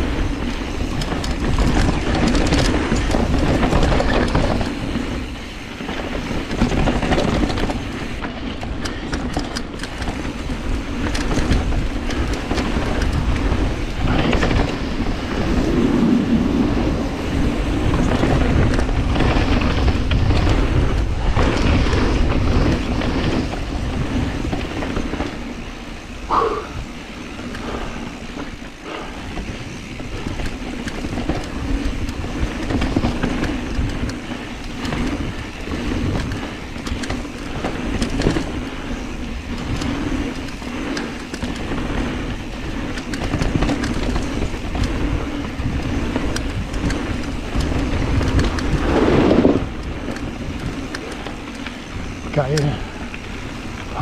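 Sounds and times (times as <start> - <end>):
bike chain rattling: 0.0 - 54.0
bike jolt: 0.0 - 54.0
bike tyres rolling on dirt and gravel: 0.0 - 54.0
wind buffeting microphone: 0.0 - 54.0.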